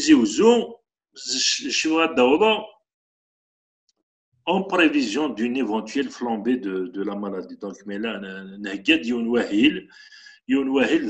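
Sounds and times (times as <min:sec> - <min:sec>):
man speaking over video call: 0:00.0 - 0:02.8, 0:04.5 - 0:11.0.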